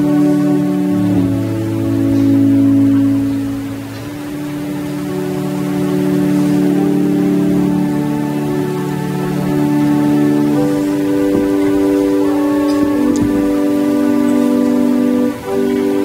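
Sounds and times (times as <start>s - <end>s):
organ playing long chords: 0.0s - 16.0s.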